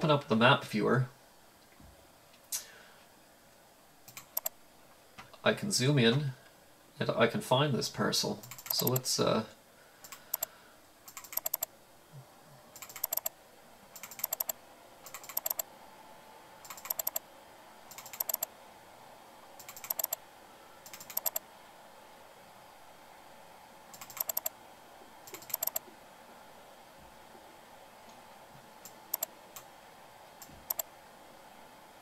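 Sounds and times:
mouse scroll wheel ticking: 0:04.1 - 0:04.5, 0:08.4 - 0:09.0, 0:10.0 - 0:10.5, 0:11.1 - 0:11.7, 0:12.8 - 0:13.3, 0:14.0 - 0:15.7, 0:16.6 - 0:17.2, 0:17.9 - 0:18.5, 0:19.6 - 0:20.2, 0:20.9 - 0:21.4, 0:23.9 - 0:24.5, 0:25.3 - 0:25.8, 0:28.8 - 0:29.3, 0:30.6 - 0:30.9.

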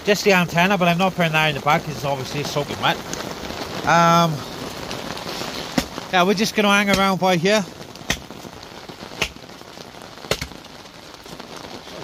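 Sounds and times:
campfire crackling: 0:00.0 - 0:12.0
fire popping: 0:00.0 - 0:12.0
rain hiss: 0:00.0 - 0:12.0.

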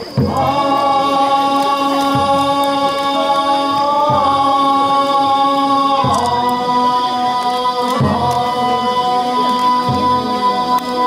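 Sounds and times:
drum stroke: 0:00.0 - 0:08.8.

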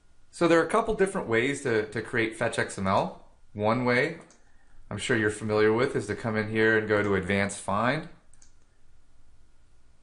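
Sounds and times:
faint computer mouse clicks: 0:04.2 - 0:04.5, 0:08.3 - 0:08.8.

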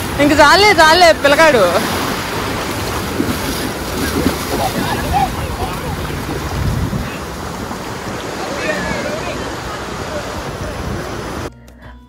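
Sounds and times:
small waves washing: 0:00.0 - 0:11.5
wind rumbling on microphone: 0:00.0 - 0:11.5.

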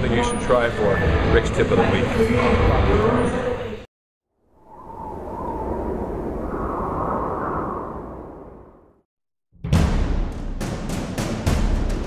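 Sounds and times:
whoosh with rising tone: 0:04.4 - 0:09.0.

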